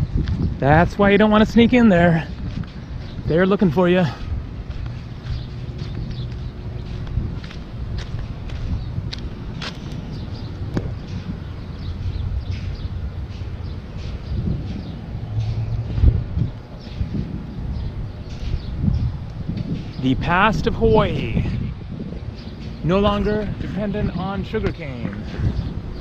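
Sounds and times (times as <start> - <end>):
wind rumbling on microphone: 0.0 - 26.0
footsteps on gravel: 2.1 - 20.0.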